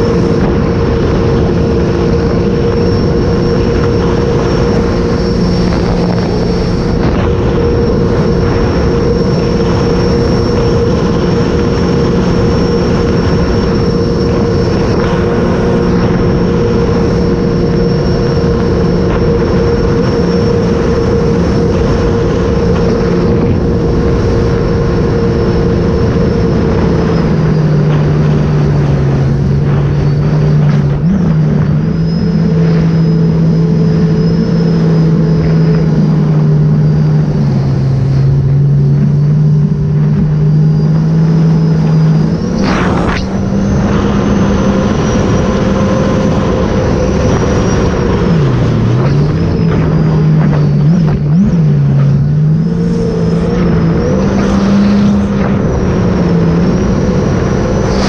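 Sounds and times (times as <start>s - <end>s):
jet ski engine running: 0.0s - 58.0s
wind and water noise: 0.0s - 58.0s.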